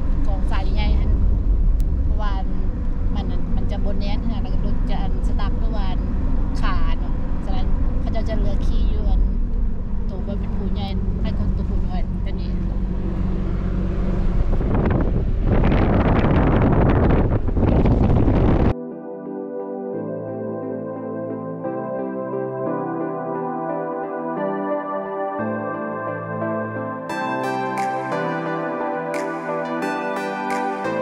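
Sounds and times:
suv engine and tyres droning: 0.0 - 18.7.

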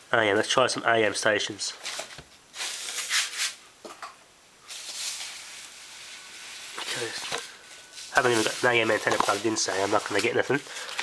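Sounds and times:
radio static hiss: 5.4 - 11.0.

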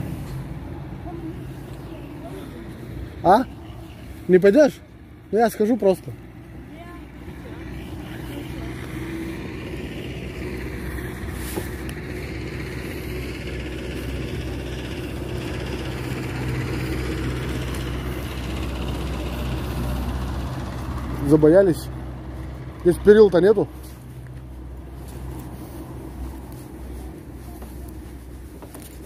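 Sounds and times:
low engine-like rumble: 0.0 - 29.0.

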